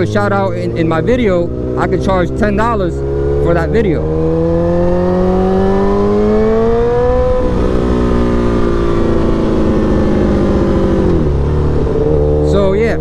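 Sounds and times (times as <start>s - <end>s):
motorcycle engine accelerating: 0.0s - 13.0s
wind noise: 4.0s - 13.0s.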